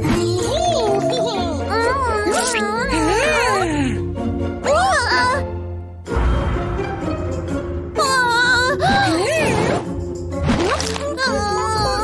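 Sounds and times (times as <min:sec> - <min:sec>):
children's background music: 0:00.0 - 0:12.0.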